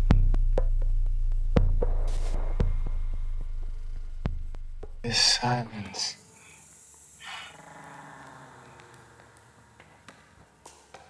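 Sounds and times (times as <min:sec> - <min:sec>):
faint low hum: 0:00.0 - 0:06.6
short hiss: 0:05.1 - 0:07.6.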